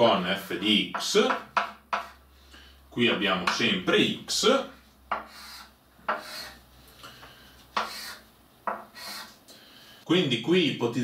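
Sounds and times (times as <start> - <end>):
chalk writing on blackboard: 0.9 - 2.2, 5.1 - 6.6, 7.7 - 9.4.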